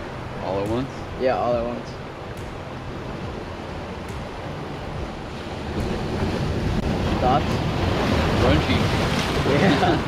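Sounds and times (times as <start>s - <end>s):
ocean surf: 0.0s - 10.0s
wind buffeting microphone: 0.0s - 10.0s.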